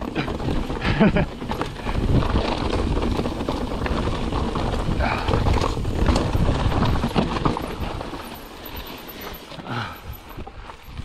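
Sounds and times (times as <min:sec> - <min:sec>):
bike rattling and clattering: 0:00.0 - 0:11.0
tyres rolling over rocks: 0:00.0 - 0:11.0.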